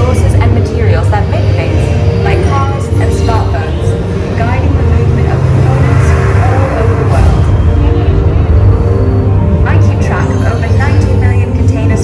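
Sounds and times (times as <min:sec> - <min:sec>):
deep rumbling soundtrack: 0:00.0 - 0:12.0.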